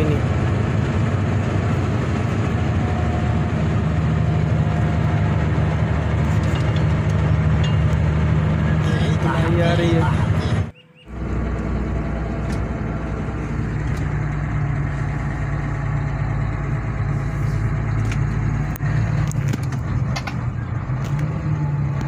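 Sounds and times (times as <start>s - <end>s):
road noise: 0.0s - 22.0s
vehicle engine hum: 0.0s - 22.0s.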